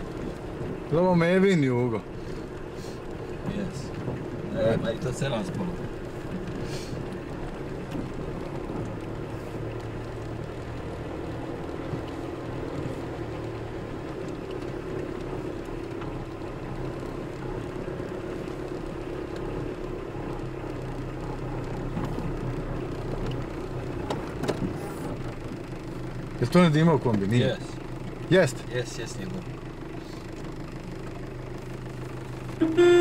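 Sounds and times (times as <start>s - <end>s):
car engine and tyre noise: 0.0s - 33.0s.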